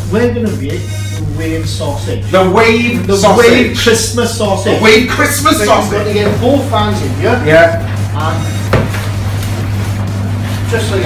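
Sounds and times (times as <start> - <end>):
steady low hum: 0.0 - 11.0
sharp knock: 8.7 - 9.1.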